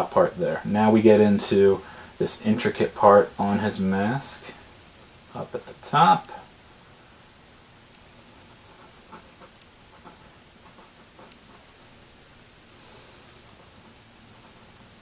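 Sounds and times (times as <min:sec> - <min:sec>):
pencil scratching on paper: 0:08.4 - 0:11.9, 0:13.4 - 0:15.0.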